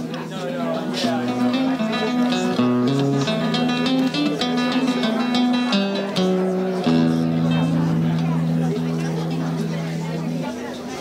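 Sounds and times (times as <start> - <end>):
classical guitar fingerstyle: 0.0 - 11.0.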